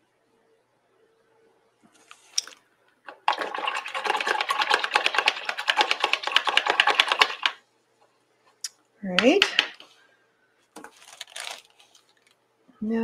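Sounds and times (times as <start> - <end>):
paintbrush rattling in water jar: 3.1 - 7.6, 9.2 - 9.8.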